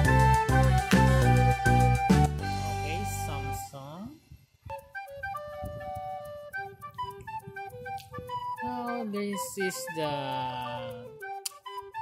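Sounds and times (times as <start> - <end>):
flute-like melody: 0.0 - 4.0, 4.6 - 12.0.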